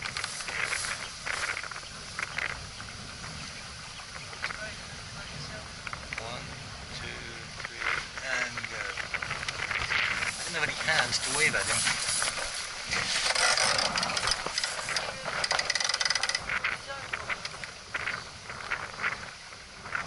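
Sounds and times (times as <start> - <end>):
water rushing along boat hull: 0.0 - 20.0
wind buffeting microphone: 0.0 - 20.0.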